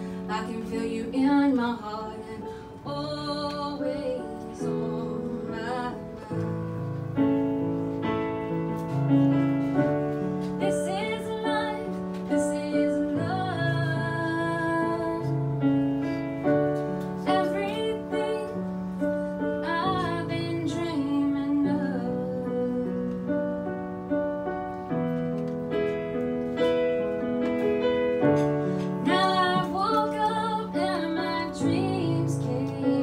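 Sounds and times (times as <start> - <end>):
piano chords: 0.0 - 33.0.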